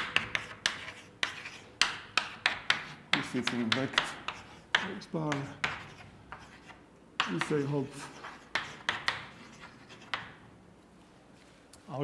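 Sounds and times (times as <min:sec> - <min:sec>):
chalk writing on blackboard: 0:00.0 - 0:10.4.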